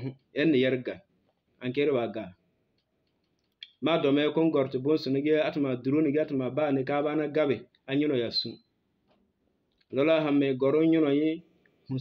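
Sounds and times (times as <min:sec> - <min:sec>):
man talking: 0:00.0 - 0:02.4, 0:03.6 - 0:08.6, 0:09.9 - 0:12.0.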